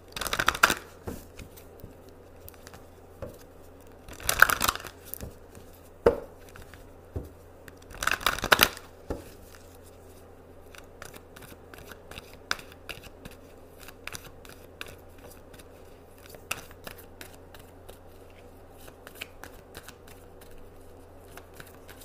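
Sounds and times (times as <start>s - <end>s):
faint low hum: 0.0s - 22.0s
cards being shuffled: 0.1s - 22.0s.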